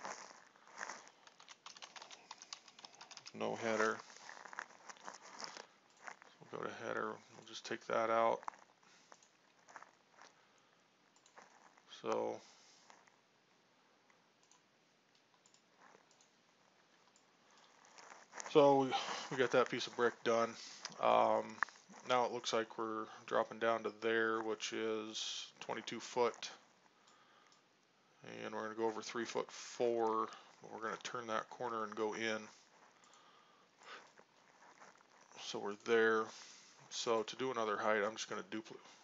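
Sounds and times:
faint keyboard typing: 0.0s - 13.2s, 14.1s - 27.7s, 28.8s - 37.4s.

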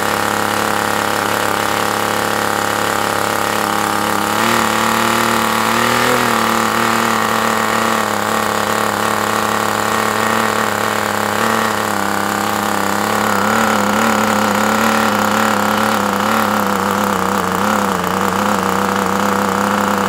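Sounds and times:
model airplane engine running: 0.0s - 20.0s.

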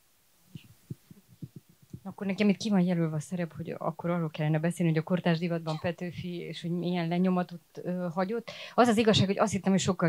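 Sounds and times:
microphone handling thumps: 0.5s - 2.2s, 9.1s - 9.9s.

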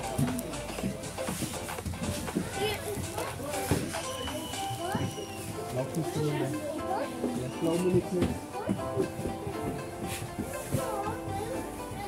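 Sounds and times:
voices chattering and calling out: 0.0s - 12.0s
children's voices: 2.1s - 12.0s.

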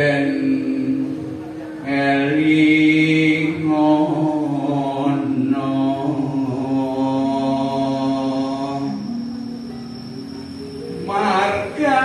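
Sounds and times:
unaccompanied singing: 0.0s - 12.0s.

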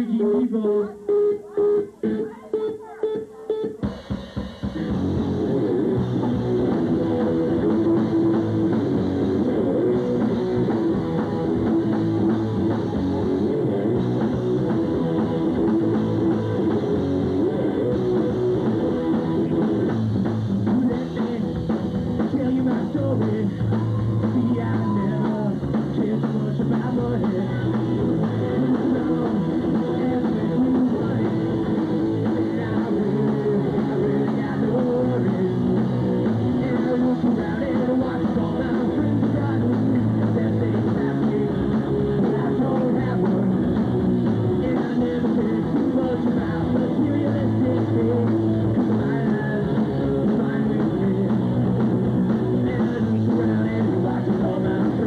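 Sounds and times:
live rock band playing: 0.0s - 55.0s.

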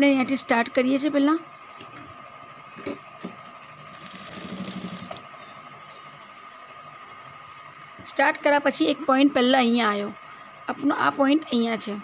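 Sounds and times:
steady high hum: 0.0s - 12.0s
sewing machine stitching: 3.9s - 5.2s.

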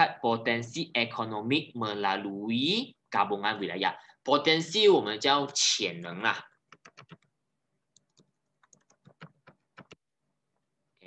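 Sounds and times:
faint keyboard keystrokes: 6.7s - 7.3s, 7.9s - 10.0s.

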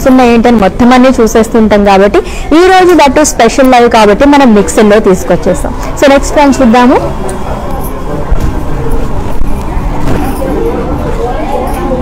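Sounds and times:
voices: 0.0s - 12.0s.

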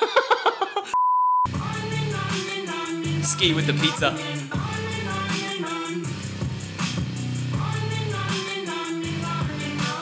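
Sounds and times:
man laughing: 0.0s - 1.0s
high-pitched bleep tone: 1.0s - 1.5s
song playing: 1.5s - 10.0s.

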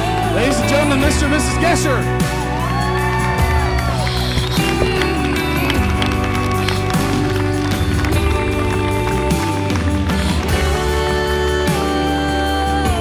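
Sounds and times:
held chords: 0.0s - 13.0s
sliding melody line: 4.0s - 10.9s.

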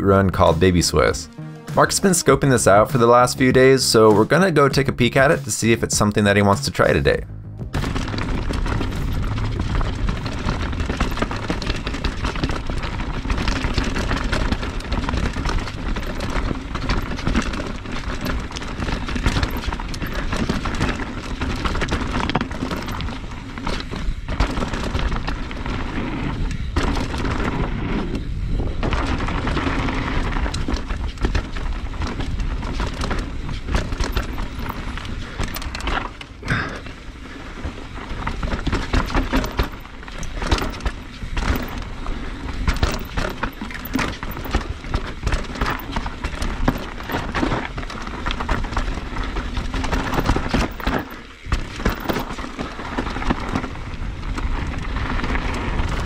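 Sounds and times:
bike tyres rolling on gravel: 1.8s - 7.0s, 7.7s - 56.0s
bike knocking and rattling: 7.6s - 56.0s.

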